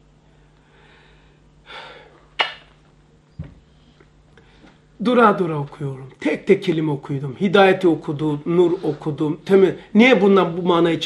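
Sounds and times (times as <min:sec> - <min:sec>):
man's sharp intake of breath: 0:00.6 - 0:02.2.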